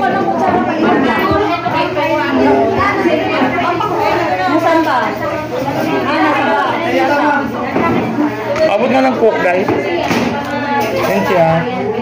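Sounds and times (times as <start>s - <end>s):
overlapping voices and chatter: 0.0s - 12.0s.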